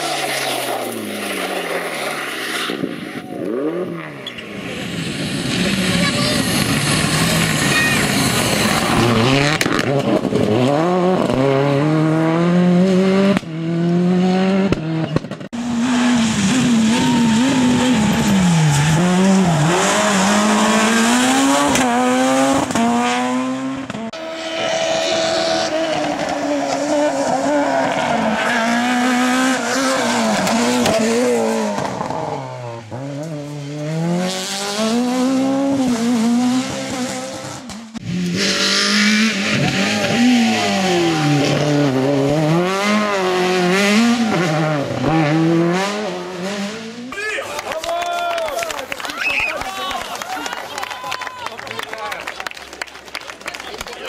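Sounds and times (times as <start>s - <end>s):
rally car engines revving past: 0.0s - 47.1s.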